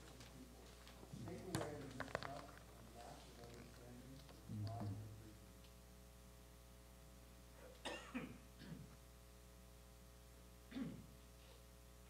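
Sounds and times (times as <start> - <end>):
person coughing: 7.6 - 8.9, 10.7 - 11.1.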